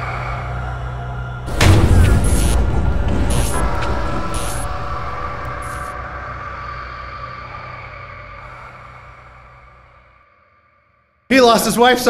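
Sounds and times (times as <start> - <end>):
low rumbling drone: 0.0 - 11.3.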